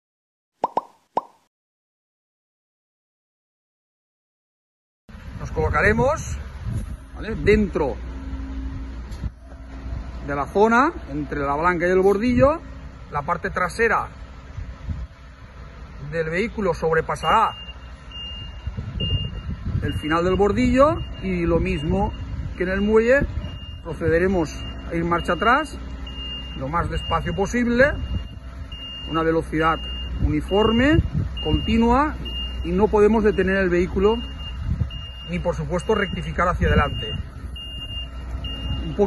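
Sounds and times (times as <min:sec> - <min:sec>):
rising pitch pops: 0:00.6 - 0:01.5
large vehicle engine rumble: 0:05.1 - 0:39.0
reversing alarm beeping: 0:17.2 - 0:39.0.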